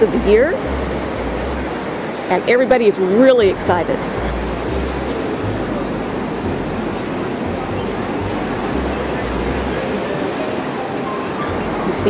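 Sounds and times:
surf washing on beach: 0.0 - 12.0
wind: 0.0 - 12.0.

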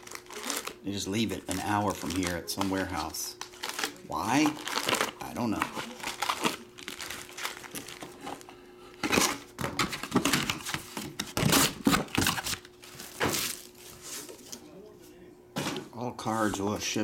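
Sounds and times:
foil packs crinkling: 0.0 - 14.5.

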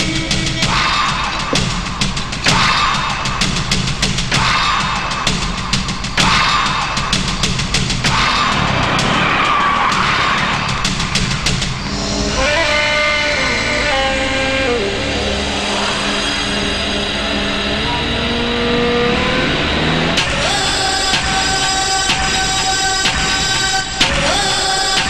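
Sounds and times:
sharp drum hits: 0.7 - 11.8
film score long notes: 7.2 - 22.4
vehicle skidding: 8.1 - 13.2.

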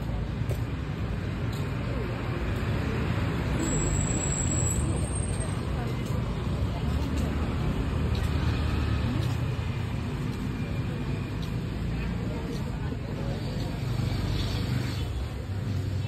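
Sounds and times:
people's voices: 0.0 - 16.0
road traffic rumble: 0.0 - 16.0.

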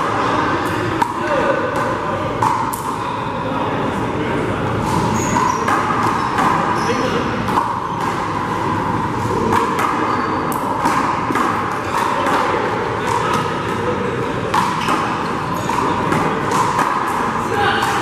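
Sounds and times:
handball smacking hands walls and floor: 9.3 - 13.5.

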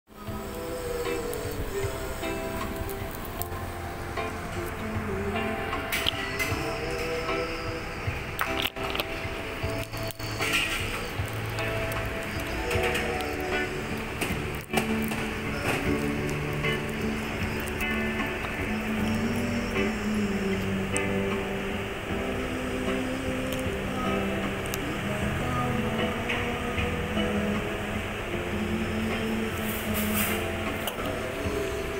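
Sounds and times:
electronic keyboard chords: 0.1 - 31.9
man singing into a microphone: 0.1 - 31.9.

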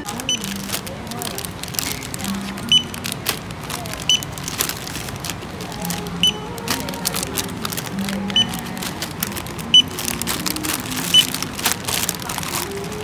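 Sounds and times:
barcode scanner beeps: 0.0 - 0.7, 1.8 - 3.2, 4.1 - 4.4, 5.8 - 6.6, 7.9 - 8.8, 9.7 - 10.0, 11.1 - 11.4
faint background music: 0.0 - 13.0
plastic packets crinkling: 0.0 - 13.0.

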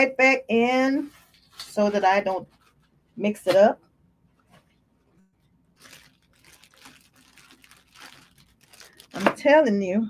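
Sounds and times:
packaging crinkling and rustling: 5.7 - 9.5.

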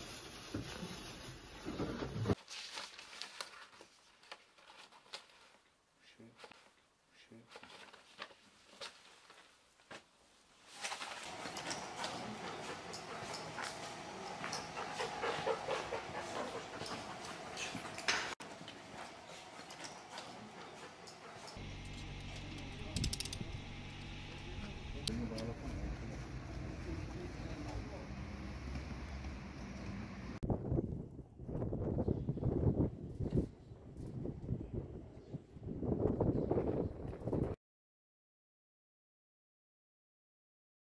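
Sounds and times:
wind buffeting microphone: 30.4 - 37.6.

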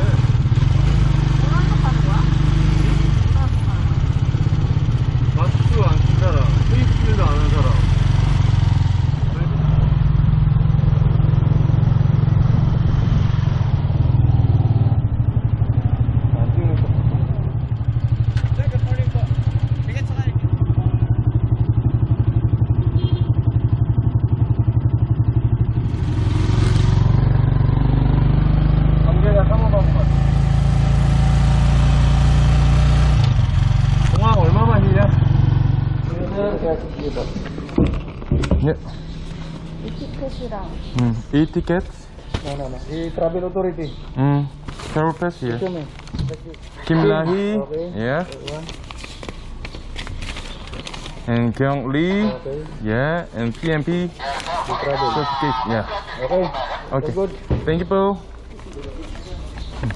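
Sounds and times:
motorcycle engine droning: 0.0 - 48.8.

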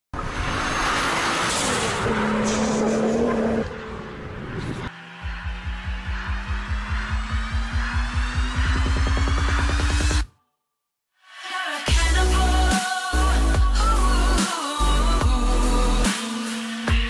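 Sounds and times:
electronic dance music: 4.9 - 10.3, 11.9 - 17.0.

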